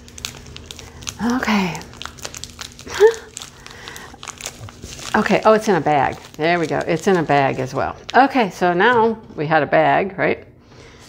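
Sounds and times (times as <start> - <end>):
plastic wrapping crinkling: 0.0 - 8.7.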